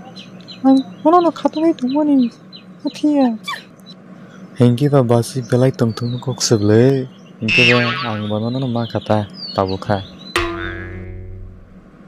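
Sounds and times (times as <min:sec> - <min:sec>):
cartoon character speaking: 0:07.5 - 0:08.4
high falling exclamation: 0:07.5 - 0:08.5.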